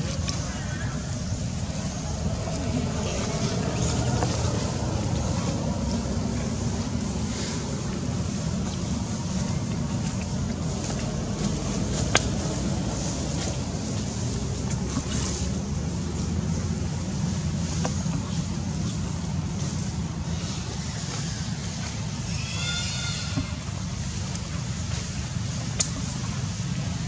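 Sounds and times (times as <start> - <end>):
low rumbling background noise: 0.0 - 27.0.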